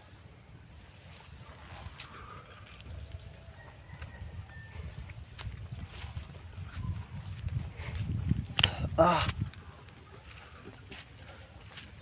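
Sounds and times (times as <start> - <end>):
wind rumble on microphone: 1.2 - 12.0.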